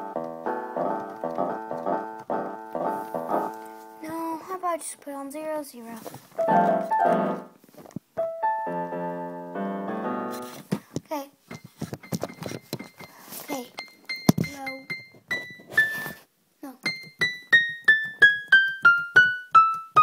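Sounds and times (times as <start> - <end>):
electric keyboard playing: 0.0 - 4.1, 6.4 - 7.6, 8.2 - 10.5.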